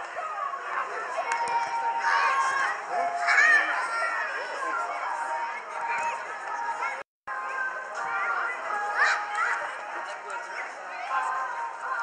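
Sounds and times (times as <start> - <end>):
children's voices and calls: 0.0 - 12.0.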